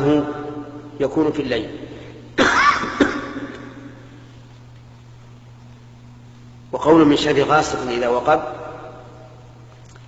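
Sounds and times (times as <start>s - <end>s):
steady low hum: 0.0s - 10.0s
person coughing: 2.4s - 3.6s.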